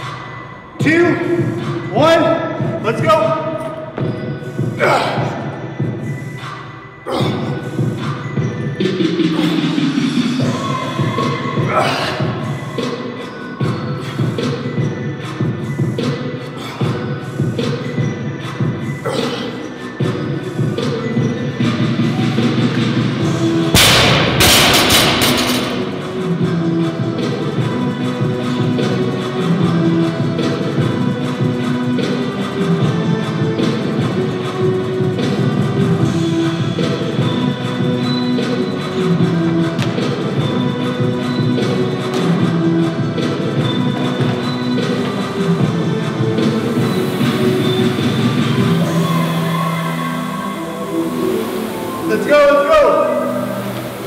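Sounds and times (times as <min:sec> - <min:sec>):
background music with beat: 0:00.0 - 0:54.0.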